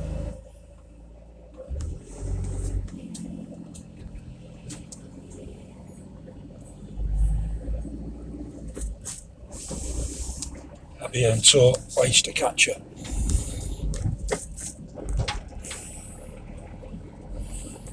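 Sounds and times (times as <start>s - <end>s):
car engine and tyre rumble: 0.0s - 17.9s.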